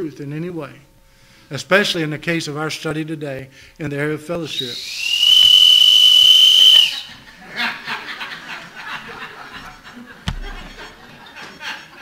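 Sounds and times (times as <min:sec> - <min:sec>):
whistle high note: 0:04.5 - 0:07.1
audience chuckling: 0:07.0 - 0:12.0.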